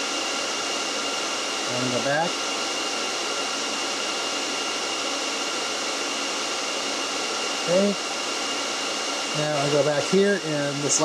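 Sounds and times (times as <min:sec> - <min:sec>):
high fan whine: 0:00.0 - 0:11.0
server cooling fans running: 0:00.0 - 0:11.0.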